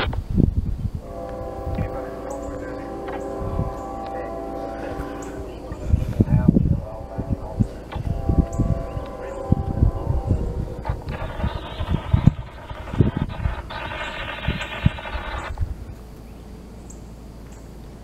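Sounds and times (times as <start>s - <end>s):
low thumps: 0.0s - 16.0s
distant locomotive air horn: 1.0s - 15.5s.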